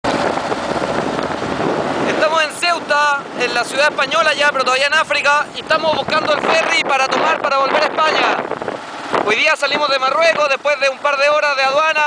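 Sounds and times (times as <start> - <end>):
wind and road noise on motorcycle: 0.0 - 12.0.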